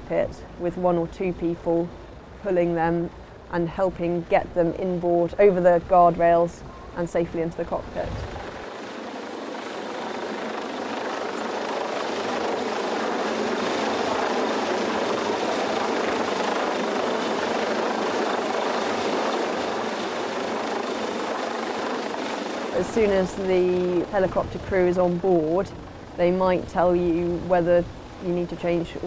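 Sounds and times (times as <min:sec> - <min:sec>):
helicopter hovering overhead: 0:00.0 - 0:29.0.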